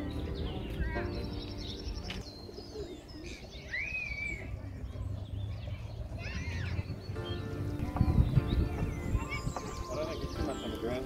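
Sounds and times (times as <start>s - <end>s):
small birds chirping: 0.0s - 11.0s
wind rumble on microphone: 4.5s - 11.0s.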